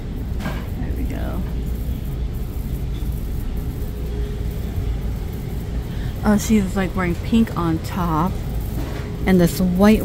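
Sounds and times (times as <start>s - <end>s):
indoor store background rumble: 0.0s - 10.0s.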